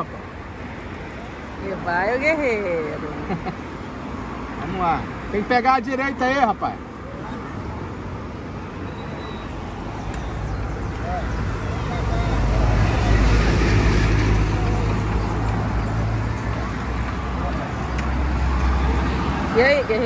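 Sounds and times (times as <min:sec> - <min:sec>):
city road traffic rumble: 0:00.0 - 0:20.0.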